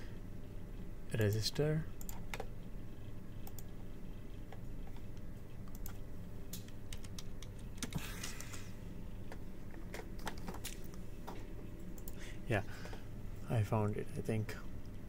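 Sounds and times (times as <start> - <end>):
steady low hum: 0.0 - 15.0
computer keyboard typing: 2.0 - 2.5, 4.5 - 6.0, 6.6 - 8.6.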